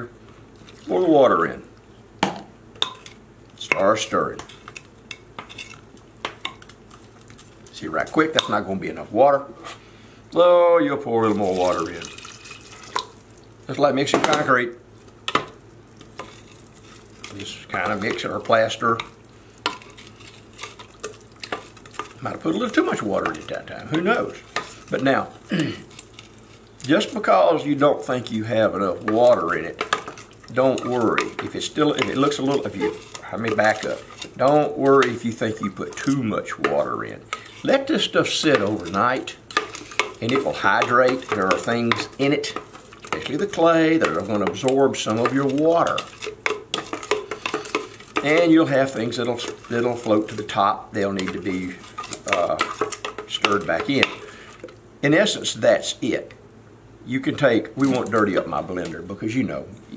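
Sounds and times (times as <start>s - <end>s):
wet swishing of stirred slurry: 16.0s - 54.8s.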